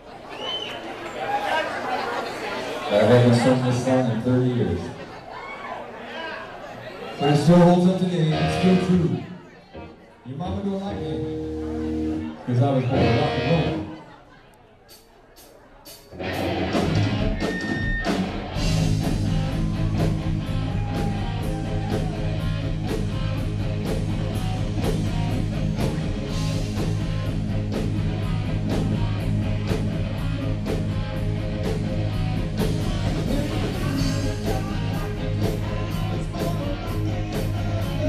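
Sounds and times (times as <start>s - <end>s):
rock band playing: 7.3s - 14.0s, 14.9s - 38.0s.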